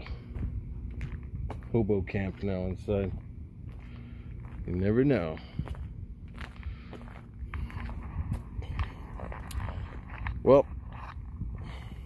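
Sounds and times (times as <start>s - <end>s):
footsteps: 0.0s - 12.0s.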